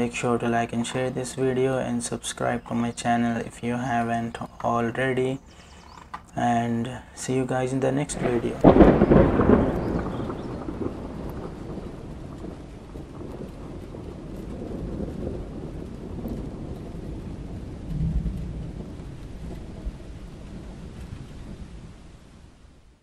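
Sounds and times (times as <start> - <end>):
rushing noise with low rumbling: 8.0 - 22.7.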